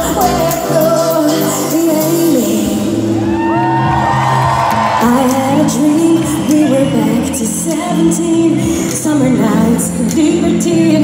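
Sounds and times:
woman singing into a microphone: 0:00.0 - 0:03.2, 0:05.0 - 0:11.0
electronic pop music: 0:00.0 - 0:11.0.

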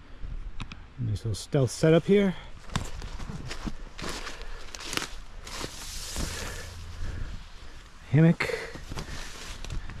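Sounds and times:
leaves rustling: 0:02.6 - 0:10.0
footsteps in wet leaves: 0:03.1 - 0:07.0.

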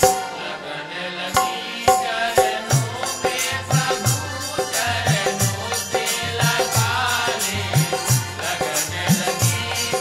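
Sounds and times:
jingling metal percussion: 0:01.3 - 0:10.0.

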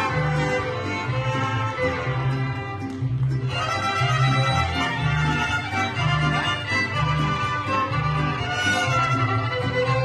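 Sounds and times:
bass line: 0:00.0 - 0:10.0
mariachi band playing: 0:00.0 - 0:10.0
violin melody: 0:00.0 - 0:10.0.

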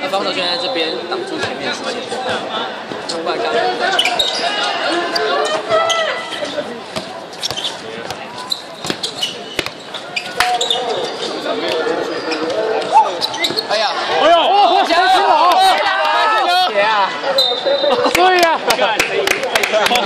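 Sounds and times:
spectators chatting: 0:00.0 - 0:20.0
basketball bouncing on hard court: 0:07.0 - 0:08.2.

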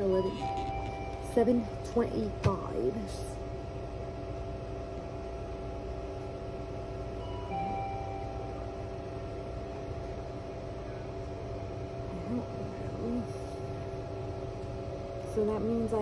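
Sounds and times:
background hum of held tones: 0:00.0 - 0:16.0.

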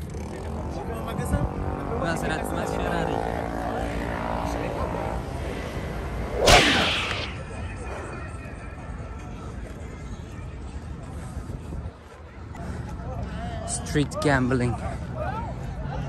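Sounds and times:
loud whoosh sweeping down: 0:06.2 - 0:07.6.

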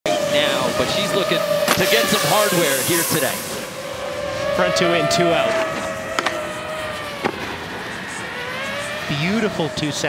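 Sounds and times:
drone motor whine: 0:00.1 - 0:10.0.

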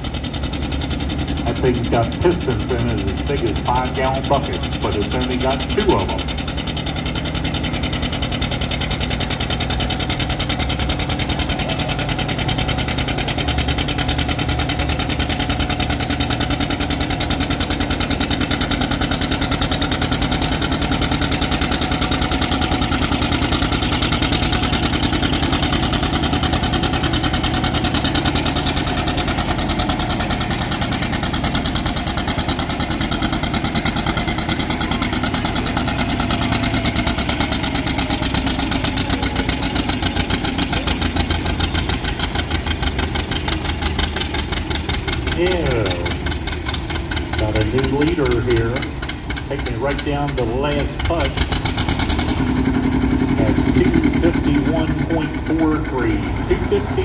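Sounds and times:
diesel tractor engine under load: 0:00.0 - 0:57.0.

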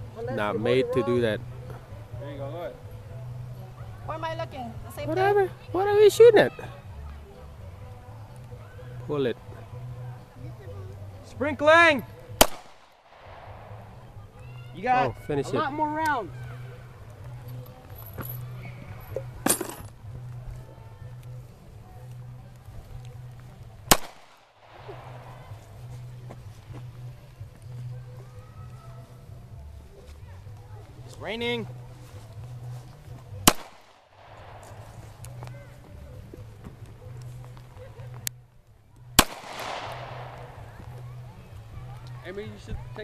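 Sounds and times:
pistol shots: 0:12.4 - 0:14.0, 0:23.9 - 0:25.4, 0:33.4 - 0:35.1, 0:39.2 - 0:40.8.

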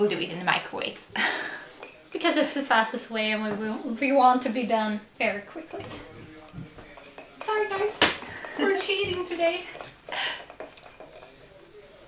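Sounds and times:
spoon clinking and scraping a mug: 0:01.7 - 0:02.1, 0:05.5 - 0:12.0
breathy sound: 0:10.1 - 0:10.6.

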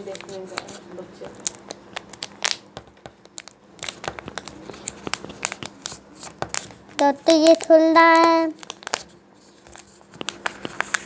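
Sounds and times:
wrapper crinkling and tearing: 0:00.0 - 0:11.0.

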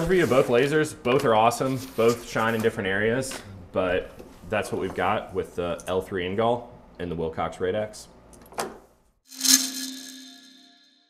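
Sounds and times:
logo sting hit: 0:09.3 - 0:11.0
ringing tone: 0:09.3 - 0:11.0.

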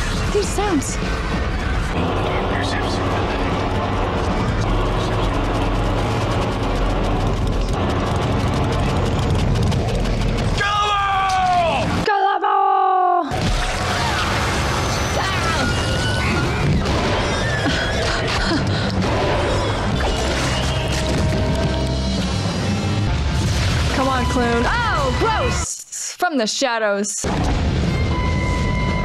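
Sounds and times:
din of voices and effects: 0:00.1 - 0:05.8.

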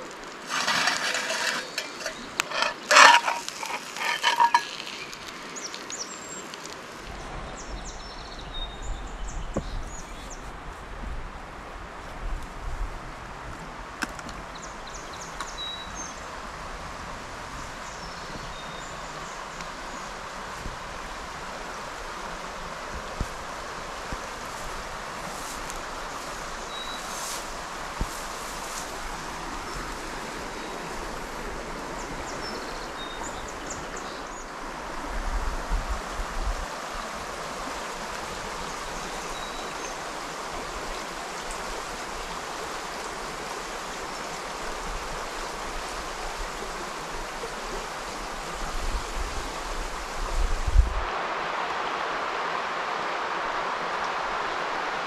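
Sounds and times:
river water rushing: 0:00.0 - 0:07.6, 0:13.7 - 0:50.4, 0:51.0 - 0:55.0
wind buffeting microphone: 0:48.5 - 0:51.1.

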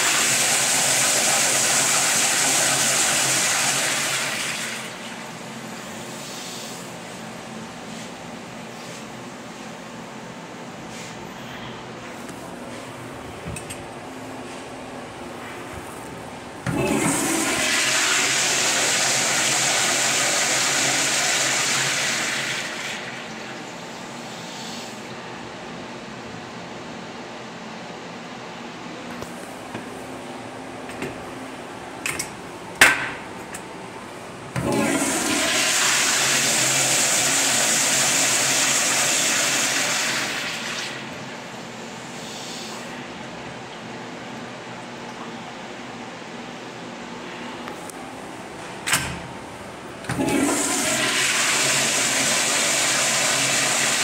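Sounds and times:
toilet flush water rushing: 0:00.0 - 0:06.0, 0:16.6 - 0:24.5, 0:34.5 - 0:41.8, 0:50.0 - 0:54.0.

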